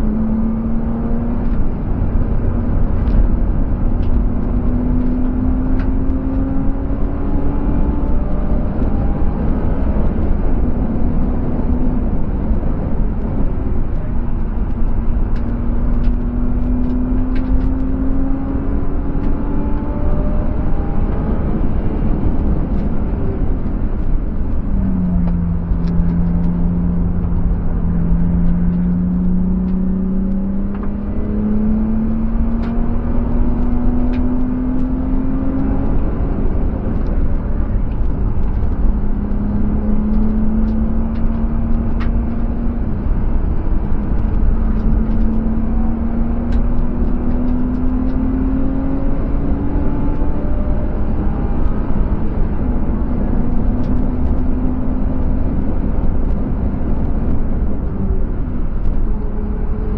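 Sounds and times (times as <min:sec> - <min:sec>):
car engine revving: 0:00.0 - 0:59.9
road noise: 0:00.0 - 0:59.9
wind noise: 0:00.0 - 0:59.9.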